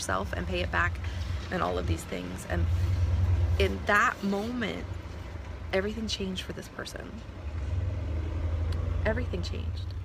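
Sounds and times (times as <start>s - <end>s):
vehicle engine rumbling: 0.0s - 10.0s.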